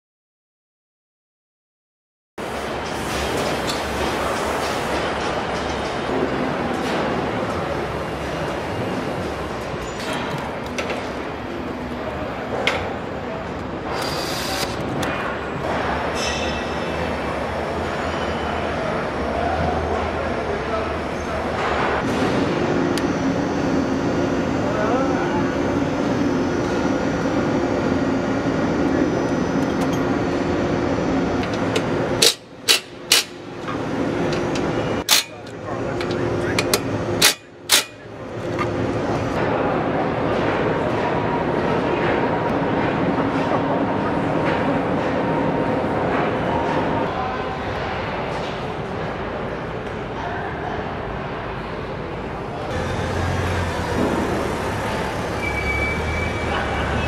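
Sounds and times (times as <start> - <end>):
machinery hum: 2.4 - 57.0.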